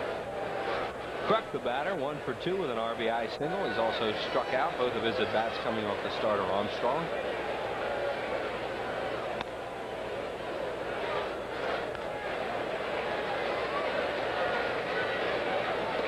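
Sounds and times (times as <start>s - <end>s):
crowd murmuring: 0.0s - 16.0s.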